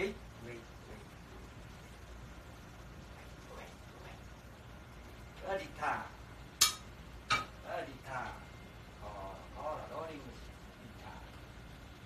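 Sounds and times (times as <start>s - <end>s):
utensils clinking against a pan: 6.6s - 7.6s.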